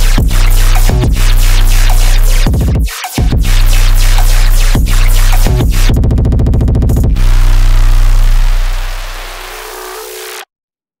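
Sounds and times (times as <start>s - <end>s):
electronic music chord with deep bass: 0.0s - 10.4s.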